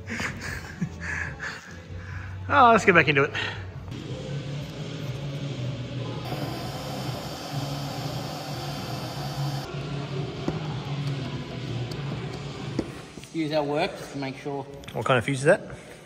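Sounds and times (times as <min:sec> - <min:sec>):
background music: 0:00.0 - 0:16.0
heat gun blower hissing: 0:06.2 - 0:09.7.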